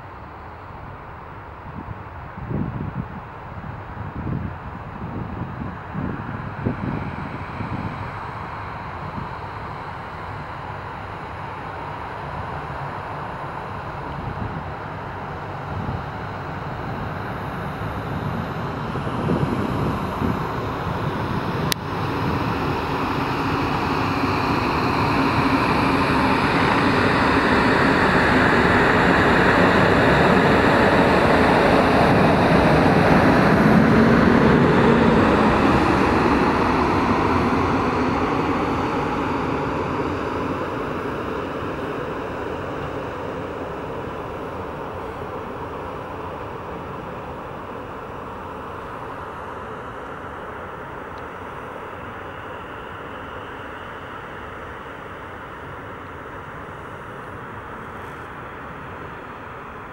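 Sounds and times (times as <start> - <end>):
train wheels on rails: 5.8 - 59.9.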